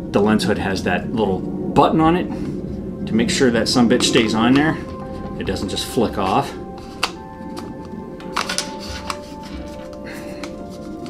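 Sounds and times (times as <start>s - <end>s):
background music: 1.0s - 11.0s.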